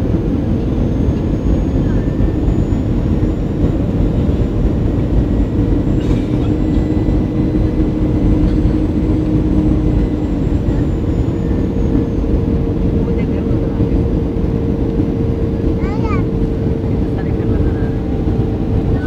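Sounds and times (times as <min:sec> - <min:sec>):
jet engines rumbling: 0:00.0 - 0:19.0.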